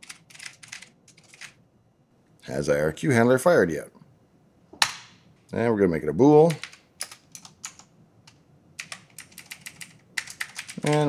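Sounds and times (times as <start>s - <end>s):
keyboard typing: 0.0s - 1.6s, 6.5s - 11.0s.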